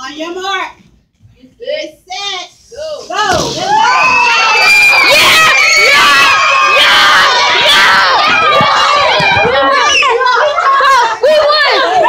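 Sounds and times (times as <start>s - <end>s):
children shouting and cheering: 3.6s - 12.0s.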